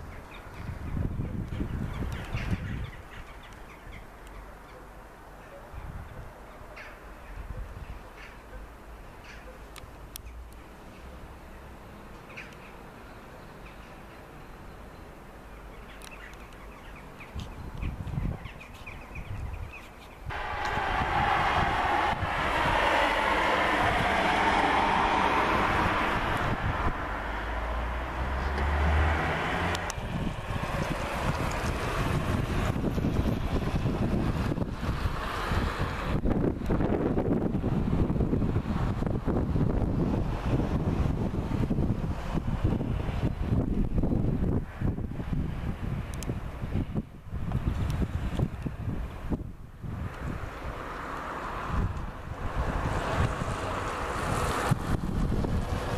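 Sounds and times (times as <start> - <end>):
wind buffeting microphone: 0.0 - 4.2, 5.7 - 8.3, 16.8 - 55.9
passing vehicle road noise: 20.3 - 55.9.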